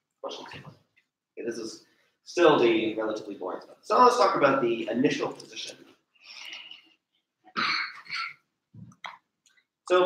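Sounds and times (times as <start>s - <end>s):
person coughing: 7.6s - 8.4s.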